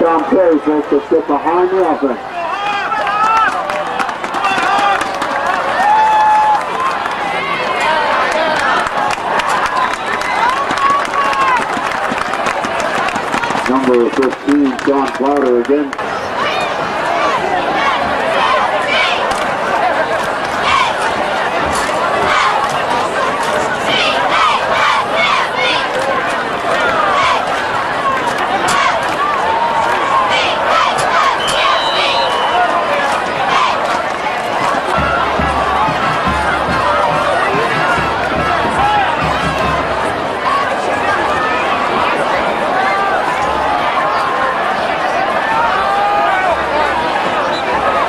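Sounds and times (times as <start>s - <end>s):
crowd babble: 0.0s - 48.0s.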